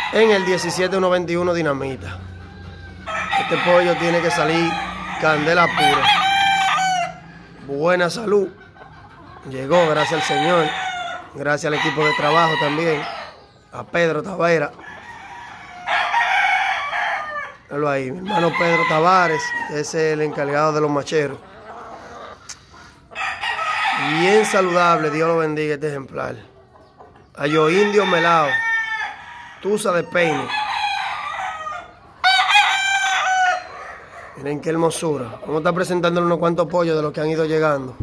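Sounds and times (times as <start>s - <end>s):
rooster crowing: 0.0s - 7.6s, 9.7s - 13.4s, 14.8s - 20.2s, 23.2s - 25.4s, 27.4s - 34.4s.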